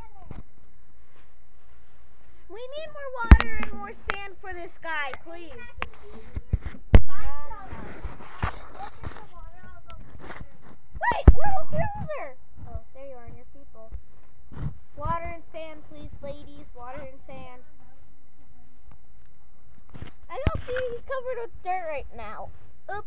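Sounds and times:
children talking: 2.5s - 13.9s, 20.3s - 23.0s.

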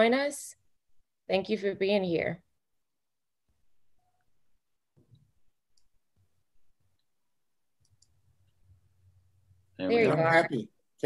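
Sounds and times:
small faint clicks: 7.8s - 8.2s.

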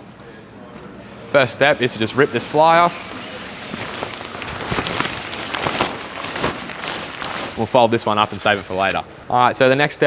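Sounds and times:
tent fabric rustling and crackling: 3.7s - 9.0s.

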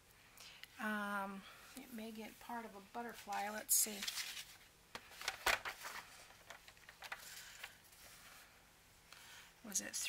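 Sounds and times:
paper sliding and rustling: 3.9s - 8.4s.

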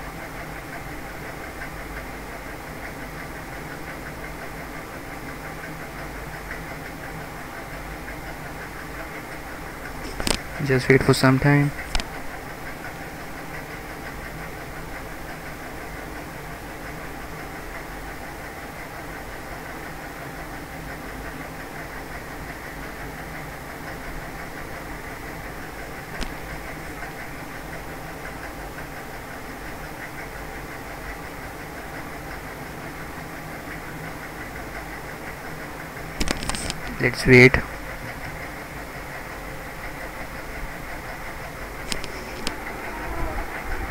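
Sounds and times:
mechanical hum with hiss: 0.0s - 43.9s.

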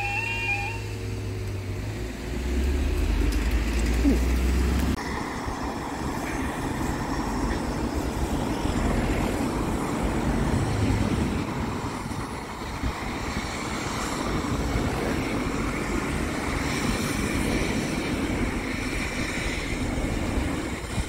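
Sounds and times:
cars driving over crossing: 0.0s - 21.0s.

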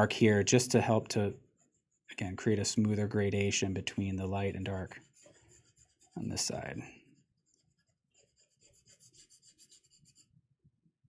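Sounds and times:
pencil scratching on paper: 4.3s - 10.4s.

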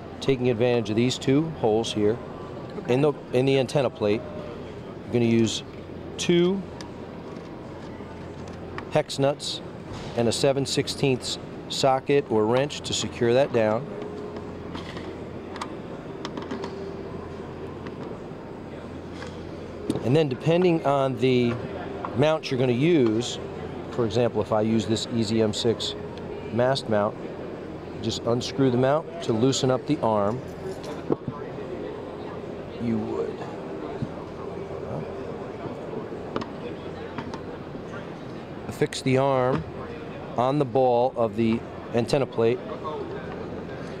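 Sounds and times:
crowd chatter: 0.0s - 44.0s
exhibition hall background noise: 0.0s - 44.0s
faint hum: 0.0s - 44.0s.

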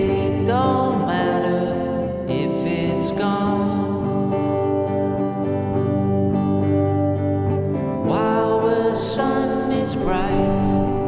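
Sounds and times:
electric guitar strumming chords: 0.0s - 11.0s.

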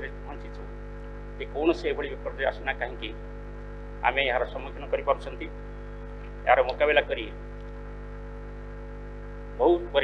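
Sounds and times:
electrical mains hum: 0.0s - 10.0s
person speaking: 1.4s - 3.2s, 4.0s - 5.5s, 6.5s - 7.3s.

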